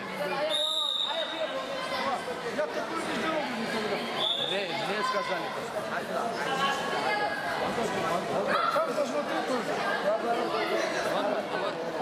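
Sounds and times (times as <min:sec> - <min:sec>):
chatter and calls of spectators: 0:00.0 - 0:12.0
short high whistle: 0:00.5 - 0:01.4.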